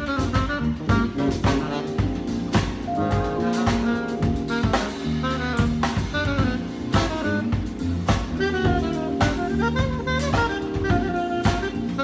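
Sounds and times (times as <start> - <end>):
cymbal and snare accents: 0.0 - 12.0
electric bass low notes: 0.0 - 12.0
jazz fusion band playing: 0.0 - 12.0.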